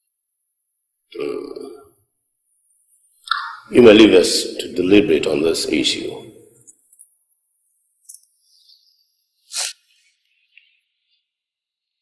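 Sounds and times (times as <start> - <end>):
guttural grunt or burp: 1.1 - 1.9.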